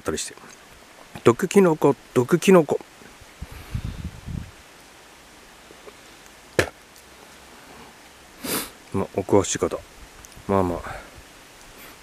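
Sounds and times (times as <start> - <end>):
person sniffing: 8.4 - 8.8.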